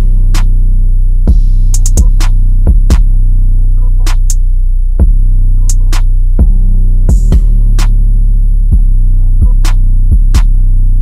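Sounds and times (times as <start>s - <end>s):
heavy bass under a beat: 0.0s - 11.0s
sharp snare or clap hit: 0.3s - 0.5s, 1.8s - 3.0s, 4.1s - 4.4s, 7.8s - 8.0s
kick drums: 1.3s - 3.2s, 5.0s - 5.3s, 6.4s - 7.6s, 8.7s - 10.6s.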